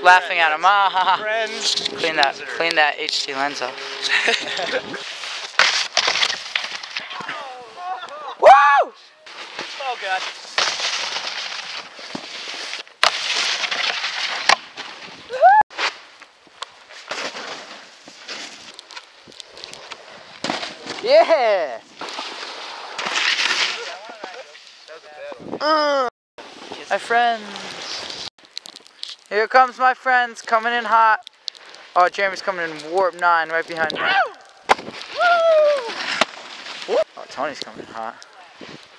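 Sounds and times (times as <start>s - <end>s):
snowboard scraping over snow: 0.1s - 7.8s, 9.3s - 16.1s, 16.9s - 18.8s
person shouting: 7.2s - 9.0s, 34.0s - 34.4s, 35.2s - 35.9s.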